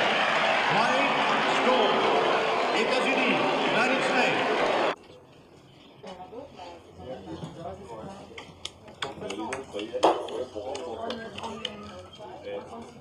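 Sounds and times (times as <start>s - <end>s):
indistinct voices talking: 0.0s - 5.0s.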